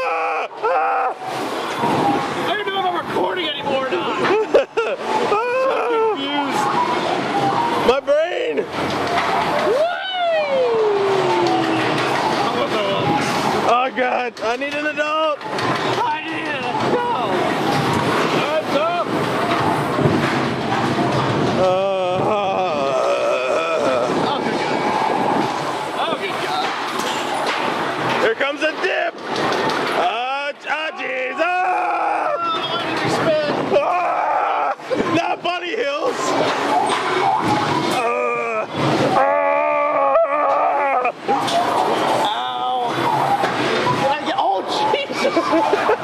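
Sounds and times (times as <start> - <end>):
riders yelling and shrieking: 0.0 - 2.0, 5.1 - 8.7, 9.4 - 13.0, 21.6 - 26.3, 30.0 - 46.0
roller coaster running on track: 0.0 - 46.0.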